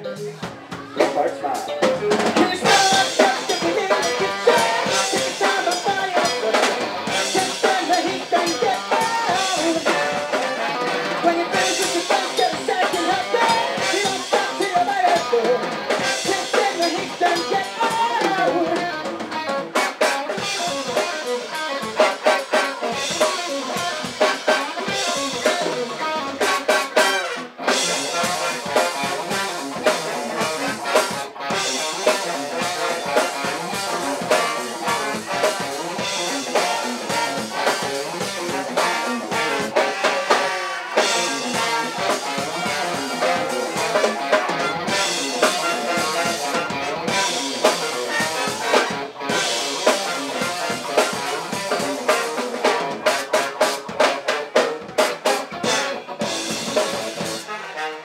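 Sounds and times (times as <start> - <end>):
bass guitar: 0.0 - 57.6
drum kit with rimshots: 0.0 - 57.9
electric guitar: 0.0 - 58.0
trombone: 19.6 - 58.0.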